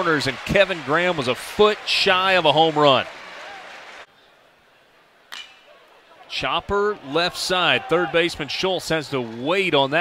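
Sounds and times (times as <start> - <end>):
faint ballpark ambience: 0.0 - 10.0
metal bat hitting ball: 5.3 - 5.7.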